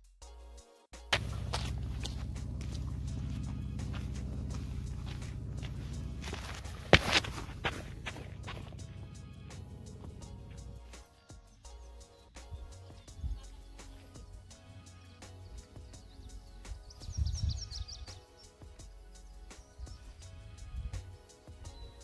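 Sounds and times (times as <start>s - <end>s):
background music: 0.0s - 22.0s
footsteps crunching on dirt: 1.1s - 11.0s
low steady rumble: 1.2s - 10.9s.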